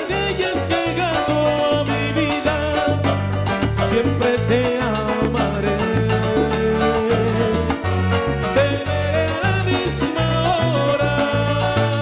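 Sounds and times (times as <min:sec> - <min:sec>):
salsa band playing live: 0:00.0 - 0:12.0.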